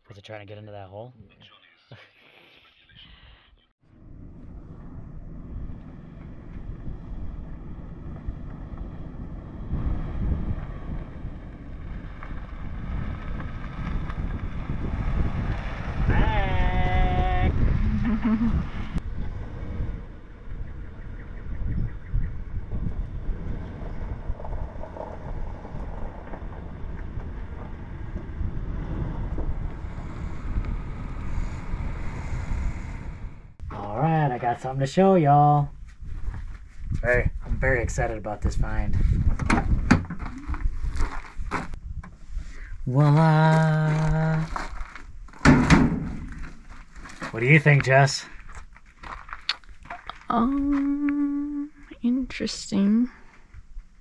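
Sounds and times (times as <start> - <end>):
wind buffeting microphone: 4.0 - 33.9, 34.6 - 52.4
person speaking: 42.9 - 44.6.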